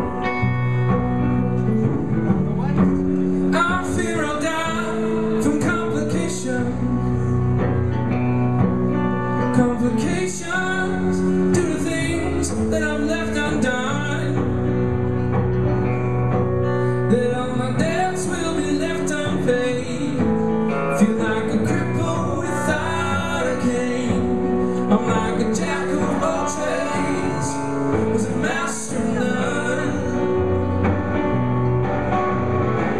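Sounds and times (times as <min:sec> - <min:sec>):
band playing acoustic guitars: 0:00.0 - 0:32.9.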